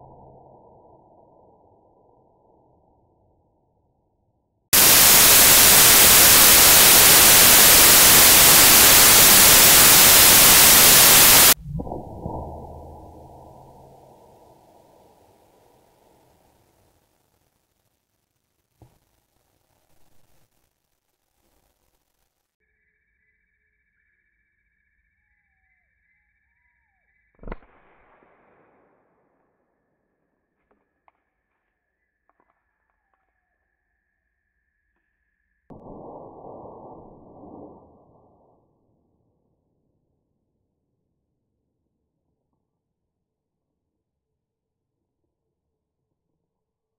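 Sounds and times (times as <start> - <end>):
loud static hiss: 4.8 - 11.6
low rush: 4.8 - 15.8.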